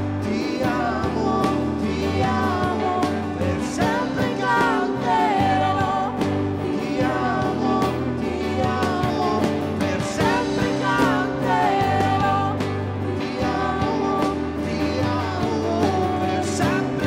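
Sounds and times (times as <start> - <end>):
drum kit: 0.0 - 17.0
guitars: 0.0 - 17.0
keyboard: 0.0 - 17.0
people singing: 0.0 - 17.0.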